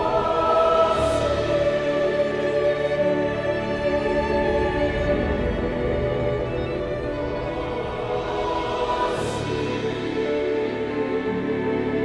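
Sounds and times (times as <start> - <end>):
choir holding sustained chords: 0.0 - 12.0.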